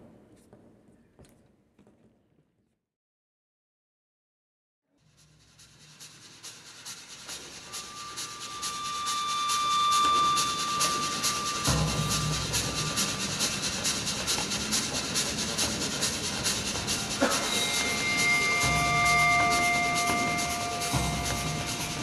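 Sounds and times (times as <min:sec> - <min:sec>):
thin high whistle-like tone: 0:06.8 - 0:22.0
train clattering on rails: 0:09.9 - 0:22.0.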